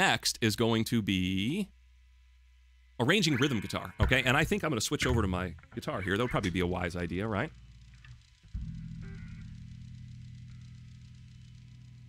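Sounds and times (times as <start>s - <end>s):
electric guitar low note ringing: 3.4s - 12.0s.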